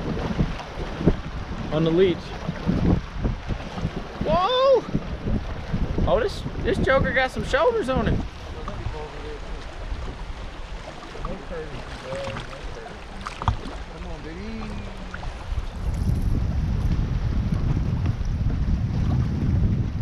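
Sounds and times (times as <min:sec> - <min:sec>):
water lapping at boat hull: 0:00.0 - 0:20.0
wind buffeting microphone: 0:00.0 - 0:20.0.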